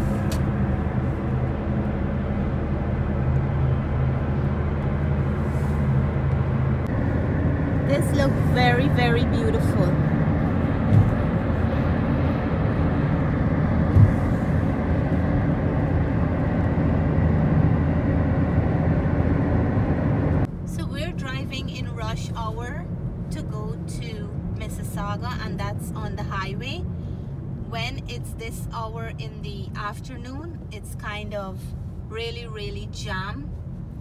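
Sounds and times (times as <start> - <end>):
road and engine noise inside car: 0.0 - 34.0.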